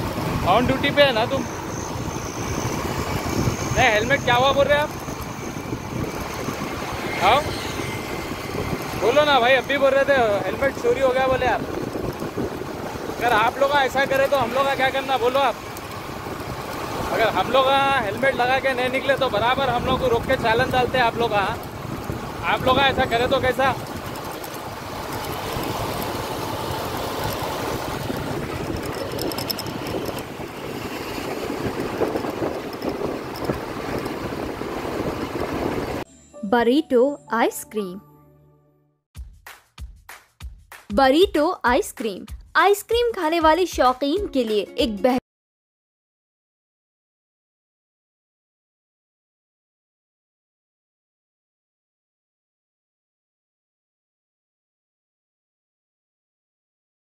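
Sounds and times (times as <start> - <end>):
motor scooter engines running: 0.0 - 36.0
road traffic noise: 0.0 - 36.1.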